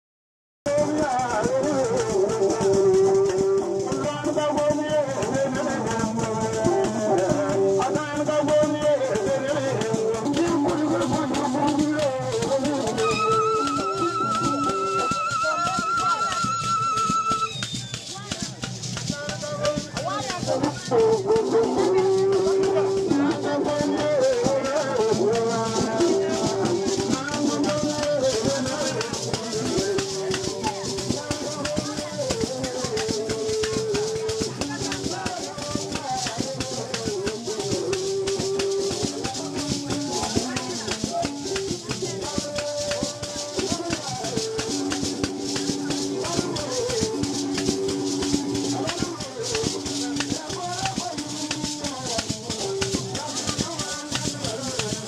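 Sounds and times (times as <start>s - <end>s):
rattles shaken rhythmically: 0.7s - 55.0s
plucked lute melody: 18.1s - 55.0s.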